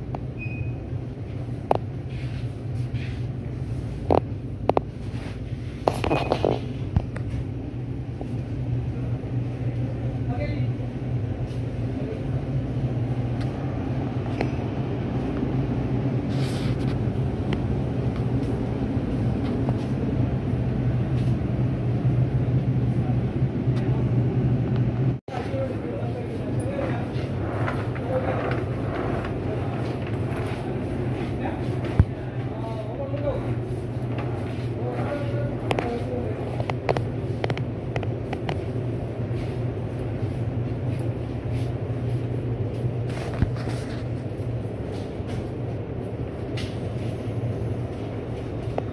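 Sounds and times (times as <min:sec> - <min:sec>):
steady low hum: 0:00.0 - 0:48.9
supermarket background rumble: 0:00.0 - 0:48.9.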